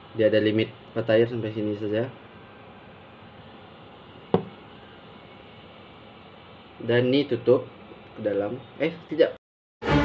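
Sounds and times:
faint steady room hiss: 0.0s - 9.4s.

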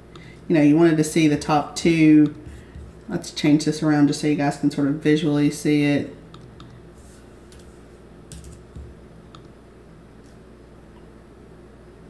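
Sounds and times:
low room hum: 0.0s - 12.0s
computer mouse and keyboard clicks: 7.5s - 9.5s.

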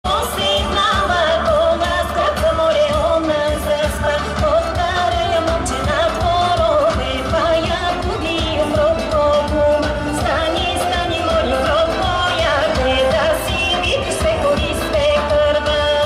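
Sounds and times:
folk dance music over loudspeakers: 0.0s - 16.0s
person singing: 0.1s - 16.0s.

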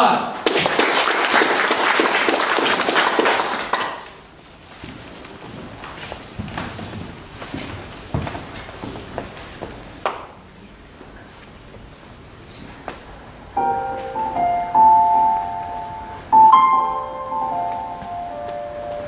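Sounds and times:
audience applause: 0.4s - 4.3s
footsteps on wooden stage: 4.4s - 11.9s.

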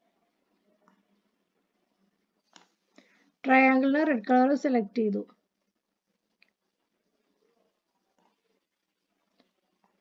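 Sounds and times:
person speaking: 3.4s - 5.4s.

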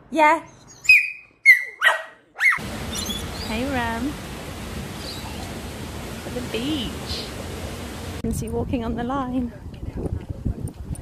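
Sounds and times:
dog yipping: 0.8s - 3.1s
steady outdoor hiss: 2.6s - 11.0s.

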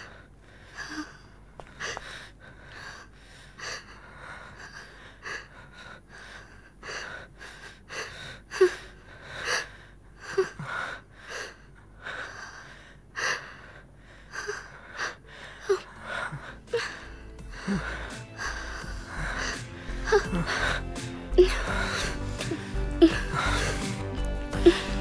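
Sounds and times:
heavy breathing and gasping: 0.0s - 25.0s.

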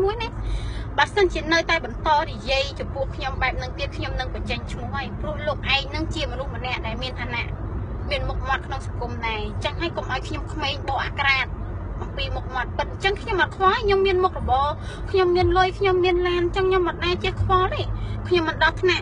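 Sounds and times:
woman talking: 0.0s - 7.5s, 8.1s - 19.0s
car low rumble: 0.0s - 19.0s.

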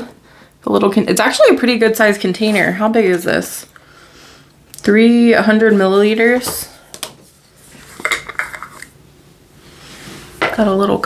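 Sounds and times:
jar handling noise: 7.8s - 9.0s
jar clicking and clattering: 8.0s - 8.9s.

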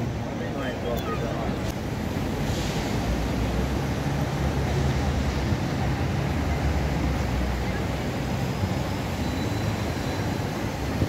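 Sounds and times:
distant traffic rumble: 0.0s - 11.0s.

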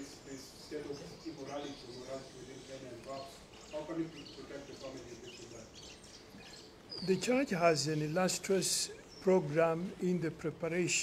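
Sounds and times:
faint bird chirps: 0.0s - 10.2s
faint background noise: 0.0s - 11.0s.

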